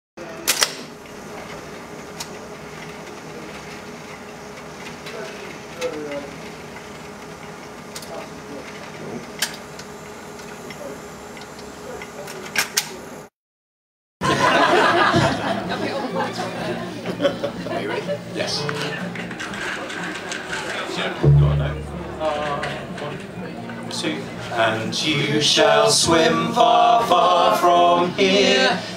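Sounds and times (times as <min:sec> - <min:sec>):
faint voices: 0:15.4 - 0:25.8
steady low hiss: 0:21.1 - 0:28.9.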